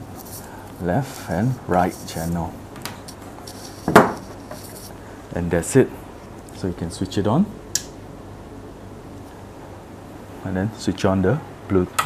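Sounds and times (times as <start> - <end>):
device knocking on tabletop: 3.9 - 4.2.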